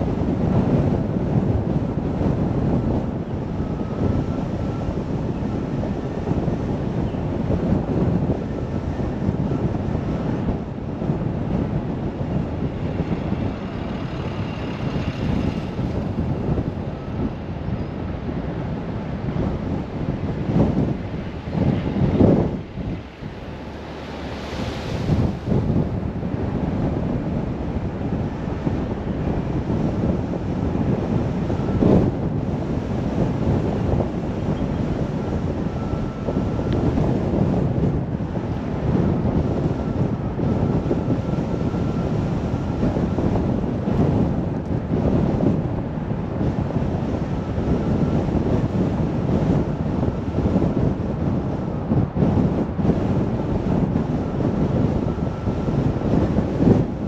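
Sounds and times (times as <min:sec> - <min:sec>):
car road noise: 0:00.0 - 0:57.0
wind rumble on microphone: 0:00.0 - 0:57.0
truck passing rush: 0:00.1 - 0:57.0.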